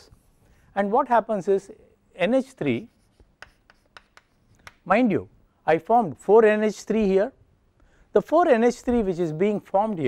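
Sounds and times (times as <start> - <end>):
chalk tapping and scratching: 0.0 - 0.8, 2.6 - 4.9.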